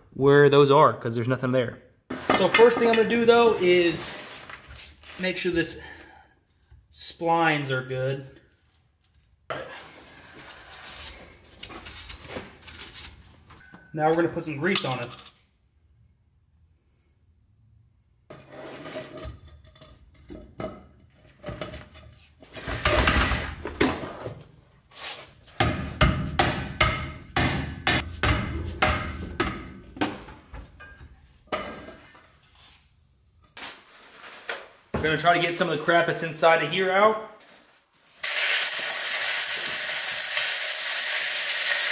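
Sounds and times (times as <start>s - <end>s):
metal clanks and knocks: 25.6s - 32.2s.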